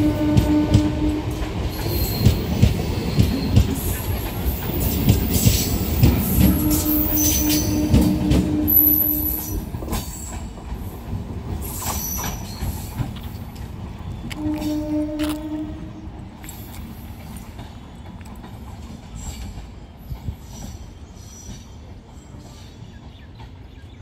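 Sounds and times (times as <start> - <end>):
electric train passing: 0.0 - 24.0
high wheel squeal: 6.3 - 8.0, 11.6 - 13.0.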